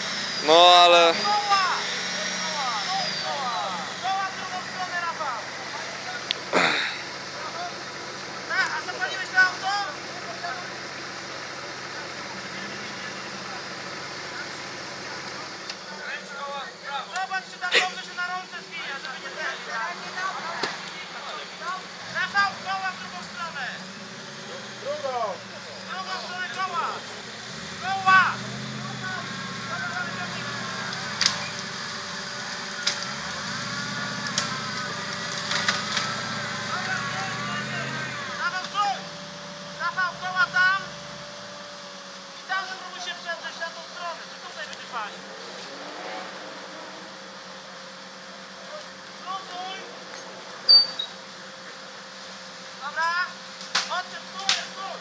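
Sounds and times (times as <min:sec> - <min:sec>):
vehicle winch whining: 0:00.0 - 0:55.0
men shouting: 0:00.5 - 0:07.8, 0:15.9 - 0:35.1, 0:36.2 - 0:41.0.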